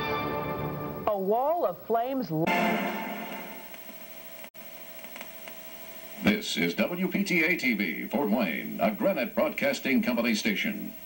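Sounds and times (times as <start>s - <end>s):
tv static hiss: 0.6s - 11.0s.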